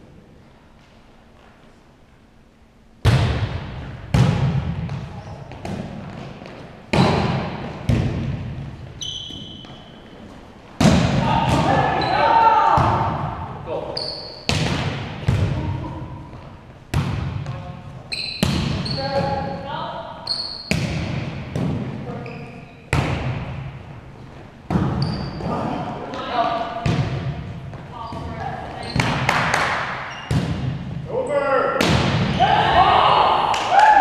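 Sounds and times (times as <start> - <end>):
volleyball being struck: 10.8 - 11.9, 31.8 - 32.4
players shouting: 11.2 - 13.3, 31.2 - 34.0.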